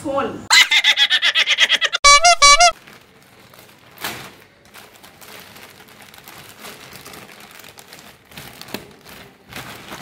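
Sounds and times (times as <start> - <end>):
honk-like tones bending upward: 1.8 - 2.8.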